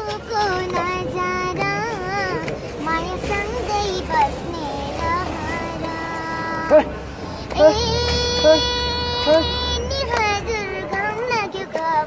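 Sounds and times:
girl singing: 0.0 - 6.8, 7.5 - 12.0.

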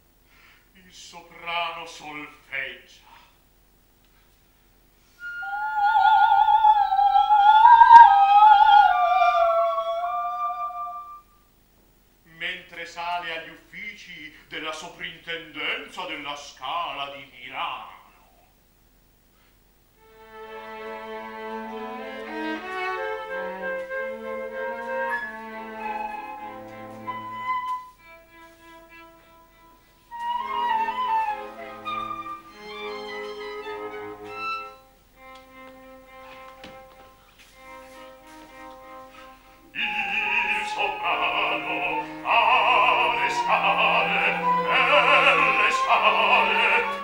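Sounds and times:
flute and strings playing: 5.1 - 11.5, 20.0 - 47.0
soprano singing with vibrato: 5.2 - 11.3, 39.7 - 47.0.

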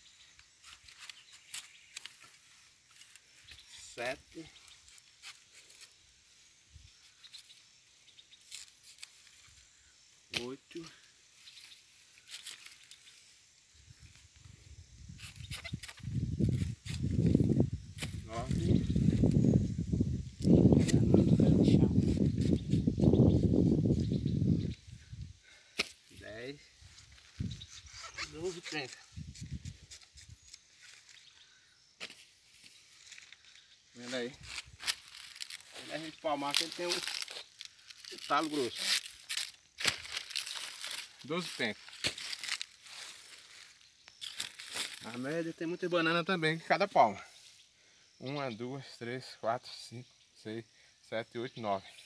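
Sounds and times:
banana leaves rustling: 8.4 - 14.4, 15.2 - 31.4, 32.0 - 46.6
plantains snapping: 36.5 - 41.2, 41.9 - 42.8.

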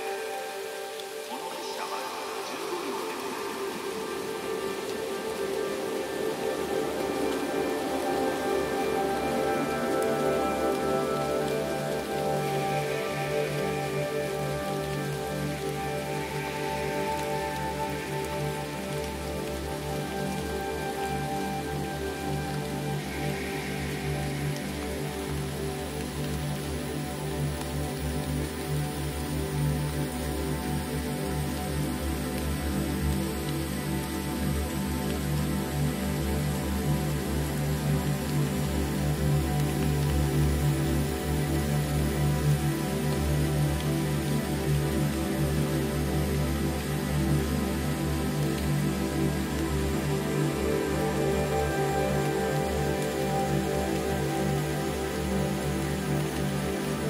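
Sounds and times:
ambient synthesizer pads: 0.0 - 57.0
falling rain: 0.0 - 57.0.

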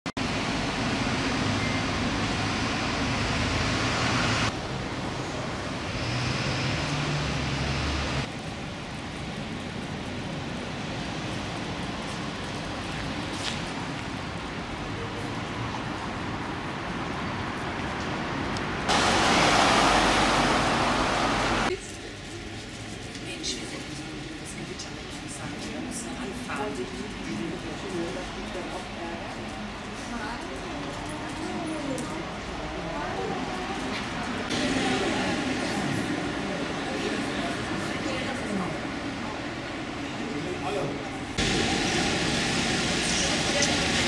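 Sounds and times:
traffic noise: 0.1 - 44.0
rushing noise: 18.7 - 21.7, 41.2 - 44.0.

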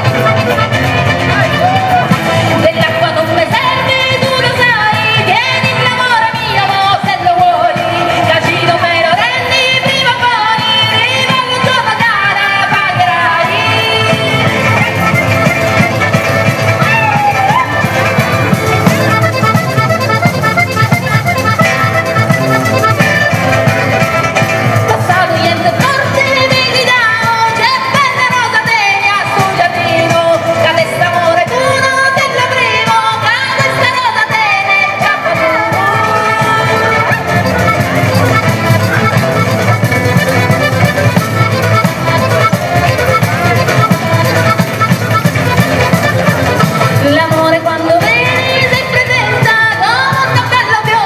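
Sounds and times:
steady drum beat: 0.0 - 30.5, 35.4 - 51.0
button accordion: 0.0 - 51.0
folk instruments: 0.0 - 51.0
strummed guitars: 0.0 - 51.0
person singing: 46.8 - 51.0.

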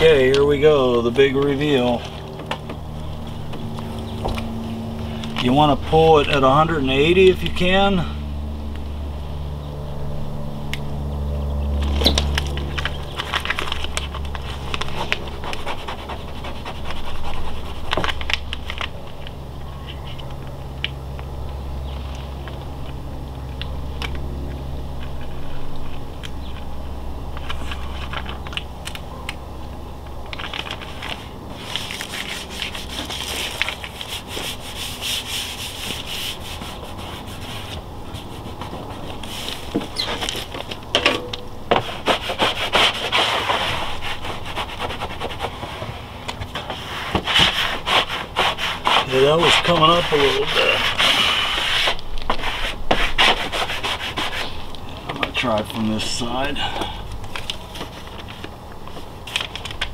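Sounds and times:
tape peeling with crinkling crackle: 0.0 - 7.6, 9.8 - 59.9
low steady rumble: 0.0 - 59.9.

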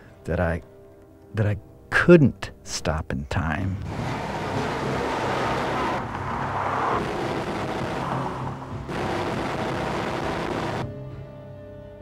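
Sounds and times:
tyres rolling over dusty ground: 3.8 - 10.8
diesel engine running: 3.8 - 10.9.

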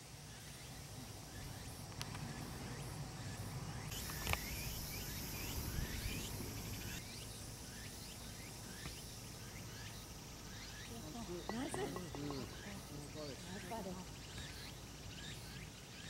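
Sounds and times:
birds chirping: 0.0 - 16.0
faint outdoor background: 0.0 - 16.0.

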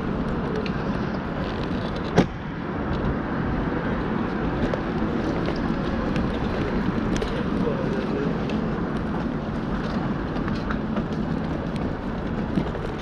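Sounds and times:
city street traffic: 0.0 - 13.0.

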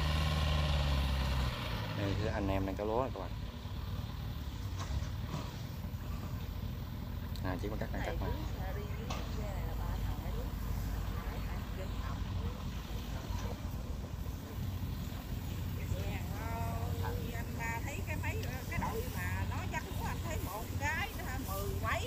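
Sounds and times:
combine harvester diesel engines droning: 0.0 - 22.0
people talking: 7.4 - 14.8, 15.6 - 22.0.

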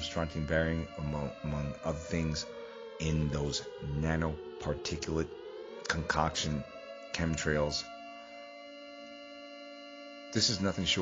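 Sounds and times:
steady electronic drone: 0.0 - 11.0.

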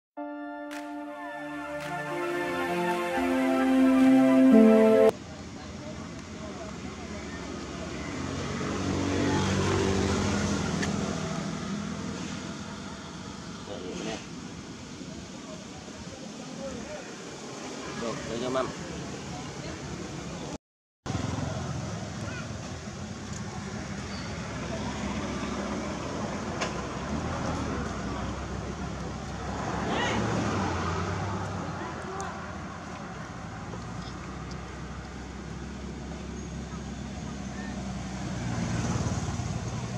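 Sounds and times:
vehicle engine passing by: 37.6 - 39.9.

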